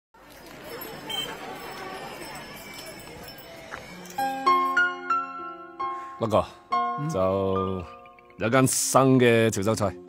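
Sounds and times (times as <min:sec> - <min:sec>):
faint indistinct voices: 0:00.2 - 0:05.5.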